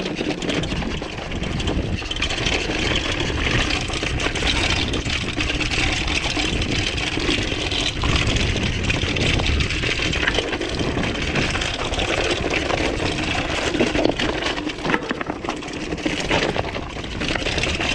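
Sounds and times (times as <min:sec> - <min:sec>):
bike chain and frame clattering: 0:00.0 - 0:17.9
bike tyres crunching over stone: 0:00.0 - 0:17.9
wind rumble on microphone: 0:00.0 - 0:17.9.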